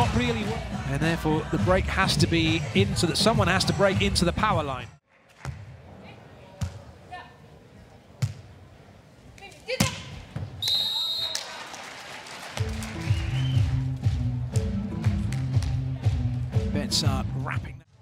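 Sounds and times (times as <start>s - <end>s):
referee's whistle blast: 10.6s - 11.5s.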